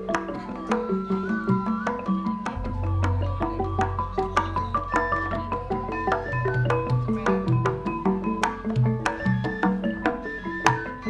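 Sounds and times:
metallophone notes struck: 0.0 - 11.0.

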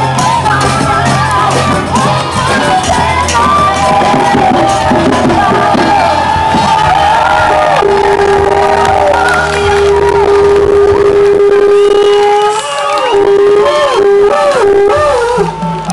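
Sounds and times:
crowd noise: 0.0 - 15.9
dance music over loudspeakers: 0.0 - 15.9.

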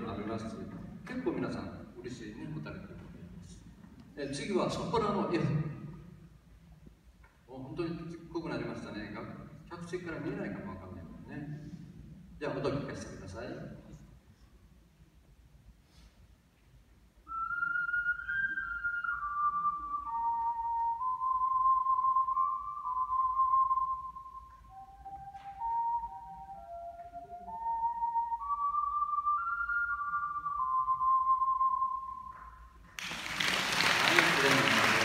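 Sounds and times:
ocarina melody: 17.2 - 32.8
audience applause: 33.0 - 35.0.

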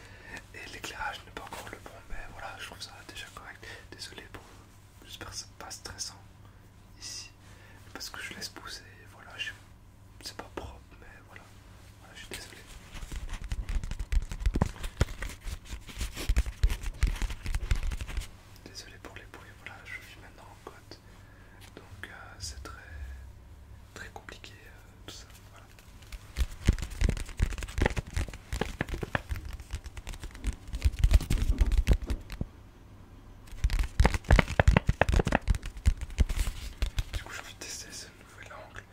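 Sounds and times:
soft whispering: 0.4 - 6.3, 6.9 - 13.0, 18.5 - 25.8, 37.0 - 38.9
quick taps and clicks: 13.1 - 15.4, 26.0 - 32.5, 33.5 - 37.3.

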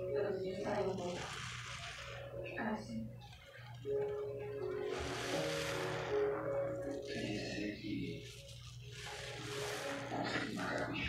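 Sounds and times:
background music with held notes: 0.0 - 11.0
sponge squelching in foam: 0.6 - 2.7, 4.6 - 11.0.

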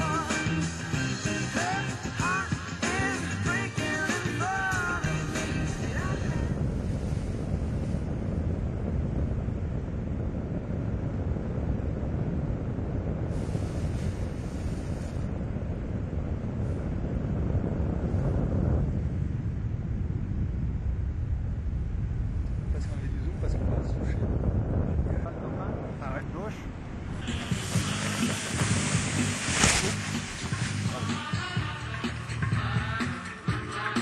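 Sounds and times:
guitar rock music: 0.0 - 6.3
wind noise on microphone: 0.0 - 34.0.

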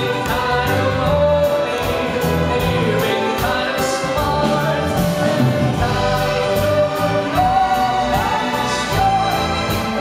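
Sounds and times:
person singing: 0.0 - 10.0
string orchestra playing: 0.0 - 10.0.

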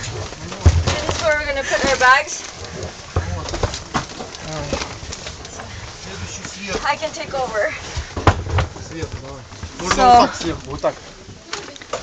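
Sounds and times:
bags knocking and rustling: 0.0 - 12.0.

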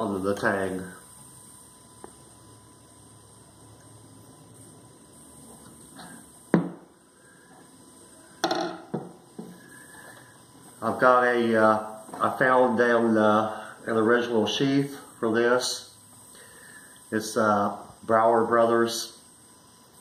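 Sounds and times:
faint steady hum: 0.0 - 20.0
knife knocking on wooden bench: 8.4 - 9.2.

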